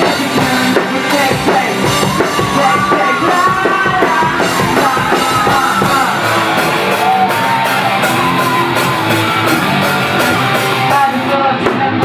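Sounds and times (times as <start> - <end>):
drums: 0.0 - 12.0
electric guitar: 0.0 - 12.0
person singing: 0.0 - 12.0.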